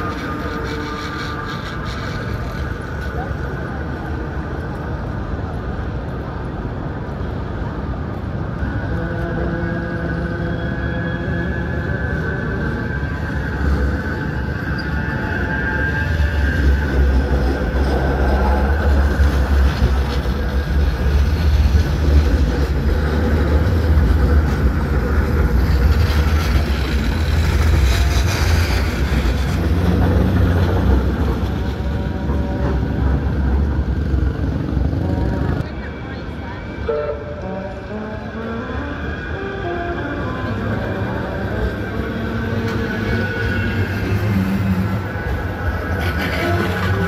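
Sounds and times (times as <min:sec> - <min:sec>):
street sound: 0:00.0 - 0:47.0
tram rumbling past: 0:00.0 - 0:47.0.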